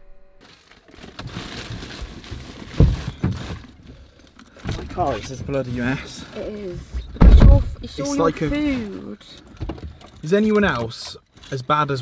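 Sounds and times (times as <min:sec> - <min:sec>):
rustling and handling in car: 0:00.4 - 0:12.0
heavy thump: 0:06.8 - 0:08.0.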